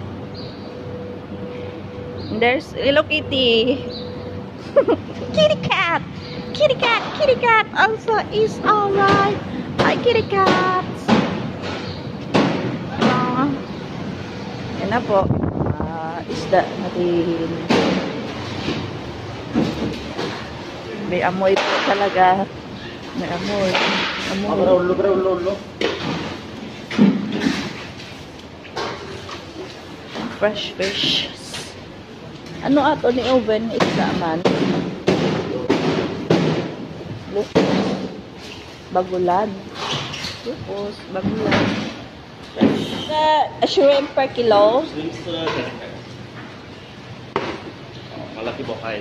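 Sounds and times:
busy indoor market din: 0.0 - 49.0
people's voices: 4.5 - 11.1, 12.8 - 13.7, 20.8 - 25.7, 30.2 - 36.0
loud knocks and thuds: 9.0 - 13.4, 33.7 - 38.2.

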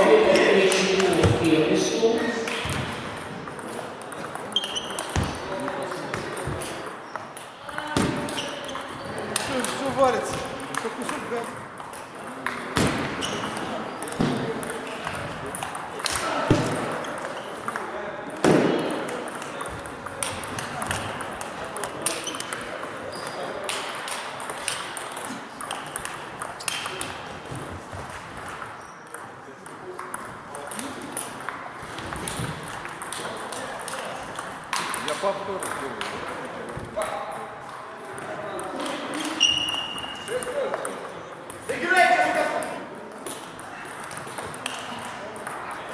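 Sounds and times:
table tennis ball clicking: 19.0 - 27.2.

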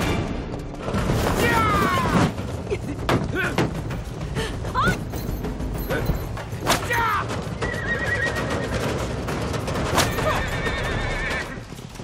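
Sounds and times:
horses galloping pulling a cart: 0.8 - 12.0
horse neighing: 7.3 - 8.8, 10.0 - 11.7.

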